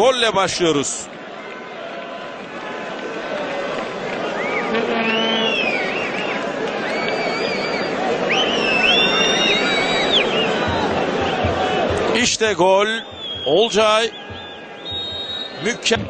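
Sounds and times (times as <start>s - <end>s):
stadium crowd noise: 0.0s - 16.0s
gliding whistles: 4.4s - 10.9s, 12.8s - 15.8s.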